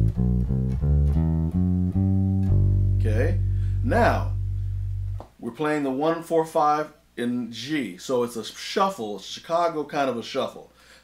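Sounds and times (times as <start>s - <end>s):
electric bass plucked notes: 0.0s - 5.3s.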